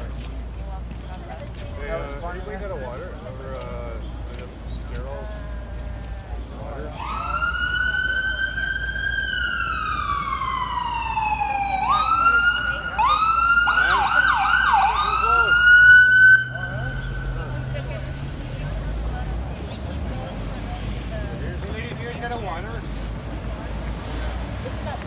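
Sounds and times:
siren wailing: 7.0 - 19.0
siren fast yelps: 13.4 - 19.0.

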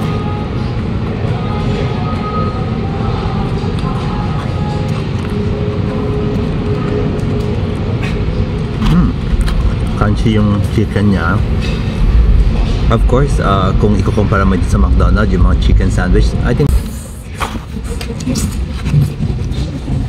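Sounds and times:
faint background music: 0.0 - 17.6
indoor station hall din: 0.0 - 20.0.

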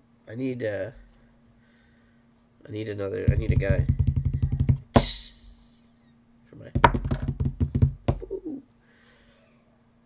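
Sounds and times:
faint steady hum: 0.0 - 10.0
man cooing wordlessly: 8.2 - 8.7
faint breathy hiss: 8.8 - 9.8.

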